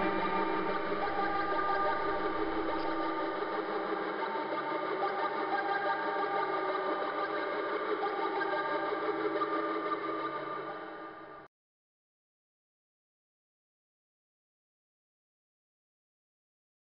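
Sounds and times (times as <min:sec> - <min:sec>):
buzzing synthesizer drone: 0:00.0 - 0:04.2.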